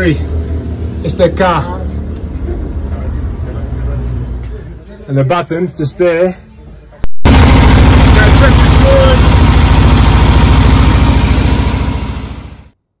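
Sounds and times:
van engine running: 0:07.2 - 0:12.8.

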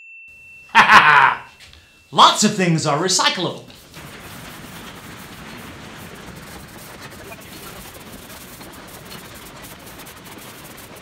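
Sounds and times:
conveyor machinery running: 0:03.2 - 0:11.0.

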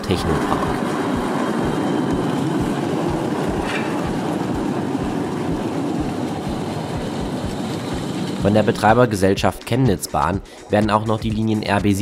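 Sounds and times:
tram rumbling on rails: 0:00.0 - 0:12.0
wheels knocking: 0:00.0 - 0:12.0.

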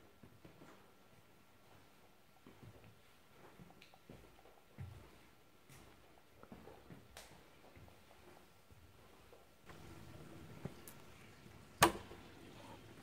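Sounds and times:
faint knocks and rustles: 0:00.0 - 0:12.8.

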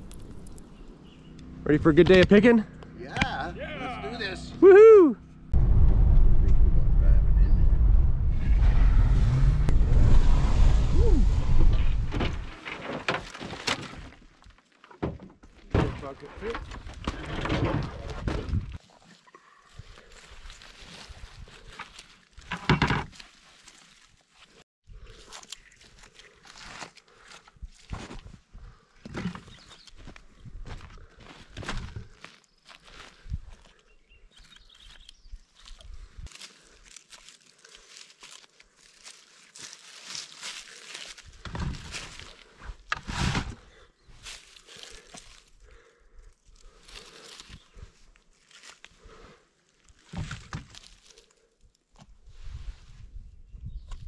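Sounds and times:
footsteps in dry leaves: 0:18.9 - 0:22.5, 0:23.1 - 0:24.6, 0:35.4 - 0:42.6, 0:44.2 - 0:45.6, 0:46.6 - 0:49.1.

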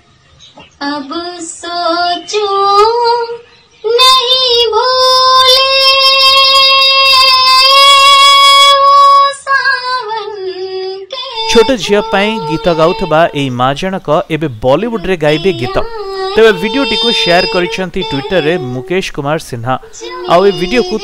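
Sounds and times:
woman singing unaccompanied: 0:00.6 - 0:14.0, 0:14.7 - 0:21.0.

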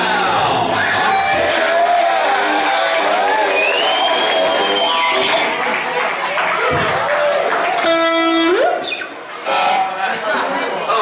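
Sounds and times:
rock band playing: 0:00.0 - 0:10.6.

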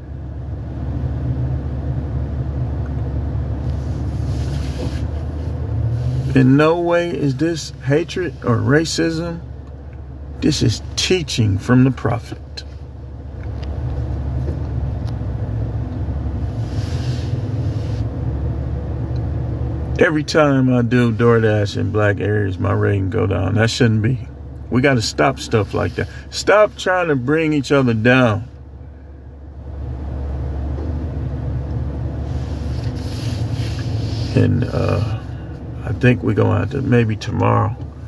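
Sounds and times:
car cabin rumble: 0:00.0 - 0:38.0
soft hiss: 0:32.2 - 0:35.5.

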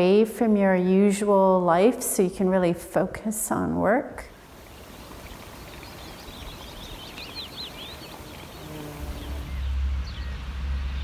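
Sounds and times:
small birds chirping: 0:04.2 - 0:11.0
steady low rumble: 0:09.3 - 0:11.0.

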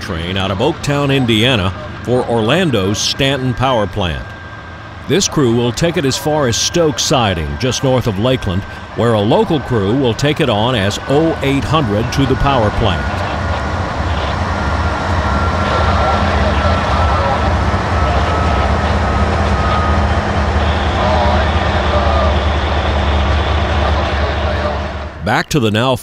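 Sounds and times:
train wheels rumbling on rails: 0:00.0 - 0:25.4
faint high whine: 0:00.0 - 0:25.6.

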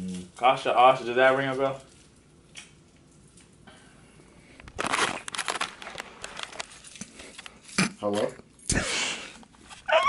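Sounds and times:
rustling and crackling: 0:04.5 - 0:08.4.

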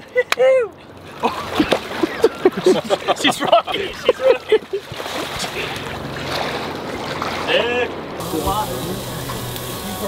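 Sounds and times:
people calling and laughing: 0:00.0 - 0:06.2
river water splashing: 0:00.0 - 0:10.0
hot dogs sizzling on a grill: 0:08.2 - 0:10.0.

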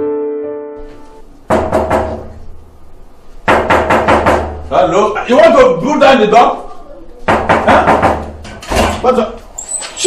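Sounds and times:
rapid knocking on door: 0:01.5 - 0:02.4, 0:03.4 - 0:04.7, 0:07.2 - 0:08.5.

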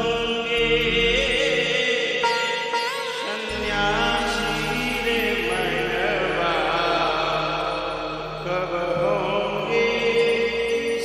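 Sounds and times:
devotional singing: 0:00.0 - 0:02.6, 0:03.2 - 0:11.0
sustained instrumental notes: 0:00.0 - 0:11.0.

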